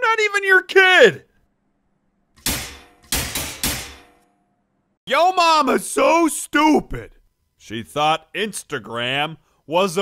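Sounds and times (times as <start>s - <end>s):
baton striking metal cage bars: 2.4s - 4.4s.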